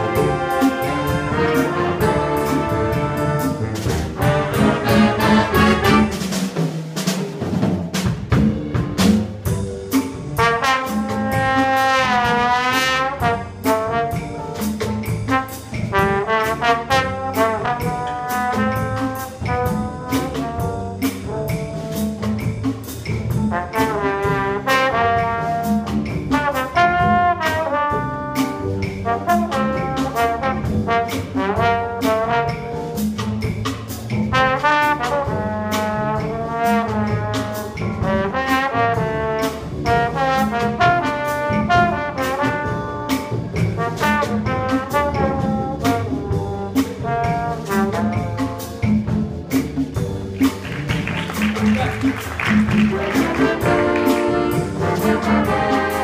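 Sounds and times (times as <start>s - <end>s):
trombone solo: 0.0s - 6.4s, 10.4s - 14.4s, 15.3s - 22.3s, 23.5s - 33.0s, 34.3s - 48.9s, 51.4s - 56.0s
big band swing music: 0.0s - 56.0s
drum kit cymbals: 0.0s - 56.0s.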